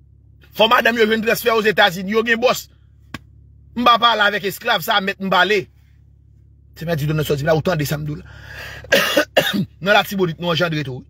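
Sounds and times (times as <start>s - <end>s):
man speaking: 0.6s - 2.7s, 3.8s - 5.7s, 6.8s - 8.3s, 9.7s - 11.0s
man coughing: 8.5s - 9.8s.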